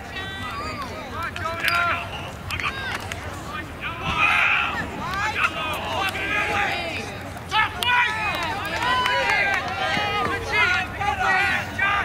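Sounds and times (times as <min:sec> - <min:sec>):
voices shouting: 0:00.0 - 0:12.0.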